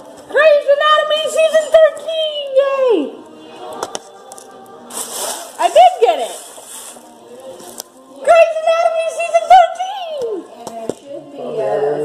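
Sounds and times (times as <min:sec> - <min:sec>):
gift wrapping rustling: 0:03.8 - 0:08.1.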